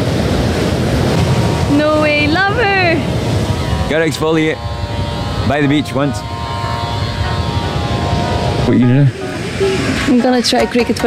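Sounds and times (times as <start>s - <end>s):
breaking surf: 0.0s - 11.0s
wind buffeting microphone: 0.0s - 11.0s.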